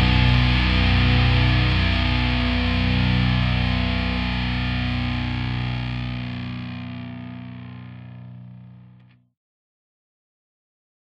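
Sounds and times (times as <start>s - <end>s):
distorted electric guitar chord: 0.0s - 9.1s.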